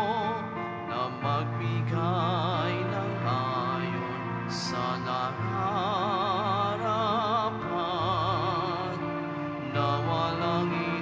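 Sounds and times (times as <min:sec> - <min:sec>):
slow devotional church music: 0:00.0 - 0:11.0.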